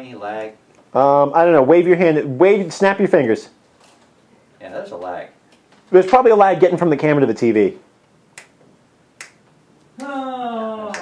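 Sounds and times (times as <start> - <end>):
finger snaps: 8.3 - 8.6, 9.2 - 10.2.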